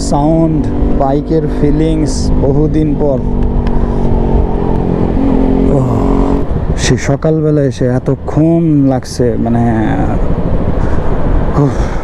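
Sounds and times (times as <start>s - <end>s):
motorcycle engine running: 0.0s - 6.8s
wind rumble on microphone: 0.0s - 12.0s.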